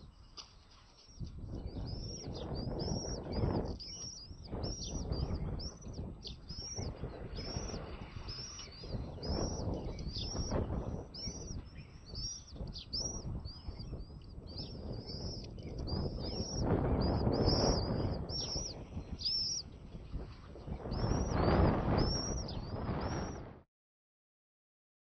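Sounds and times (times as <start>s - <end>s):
birds chirping: 0.0s - 23.5s.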